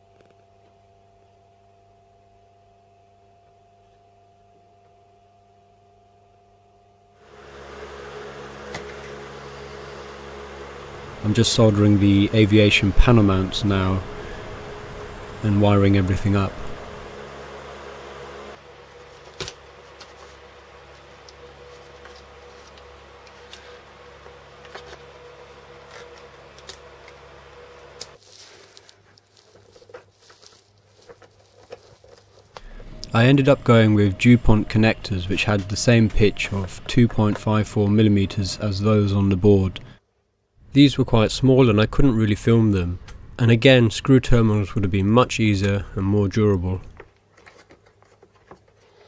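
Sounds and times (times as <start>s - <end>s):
steady low hum: 0.0s - 47.1s.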